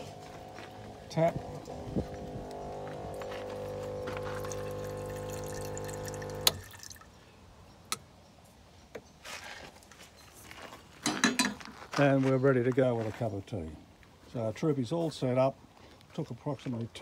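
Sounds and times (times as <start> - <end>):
electric water pump humming: 0.0 - 7.0
pump switch click: 2.4 - 6.6
water running into saucepan: 3.2 - 7.0.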